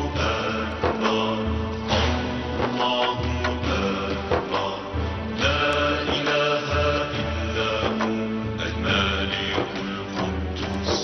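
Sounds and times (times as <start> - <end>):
theme music with sustained tones: 0.0 - 11.0.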